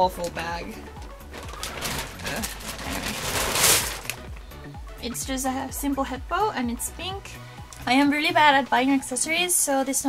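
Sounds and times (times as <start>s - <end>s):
plastic bag rustling: 0.8s - 4.4s.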